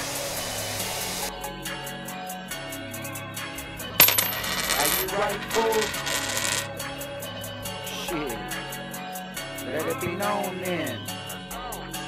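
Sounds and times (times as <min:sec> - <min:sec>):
background music: 0:00.0 - 0:12.0
coin clinking: 0:04.0 - 0:06.8.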